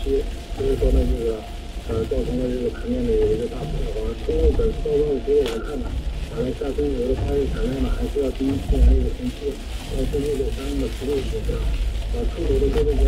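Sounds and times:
rain hiss on car: 0.0s - 13.0s
road rumble inside car: 0.0s - 13.0s.

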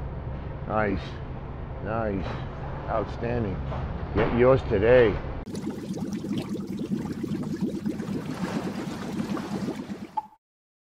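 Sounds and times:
bubbling gurgling liquid: 5.5s - 10.4s.

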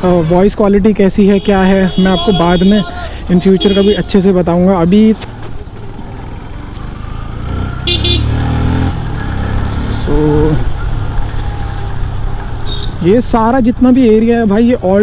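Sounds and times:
motorcycle engine rumble: 0.0s - 15.0s
vehicle horn toots: 1.3s - 2.9s, 3.5s - 4.1s, 7.9s - 8.4s, 12.6s - 13.0s.

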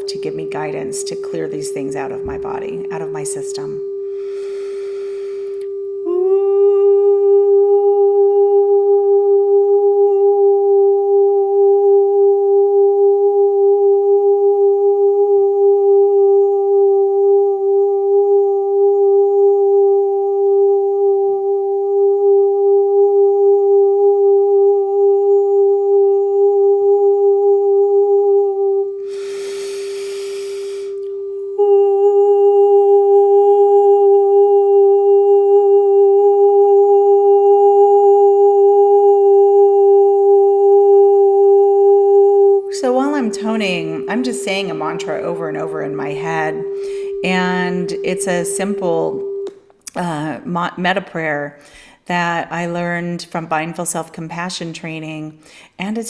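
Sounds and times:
pure sine tone: 0.0s - 53.2s
woman breathing in: 4.0s - 5.7s, 29.0s - 31.1s, 46.8s - 47.2s, 51.6s - 52.1s, 55.4s - 55.8s
woman toning a note: 42.7s - 50.7s.

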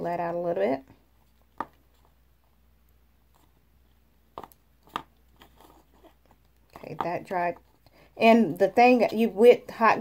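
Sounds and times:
sticks rustling on paper: 3.2s - 9.0s.

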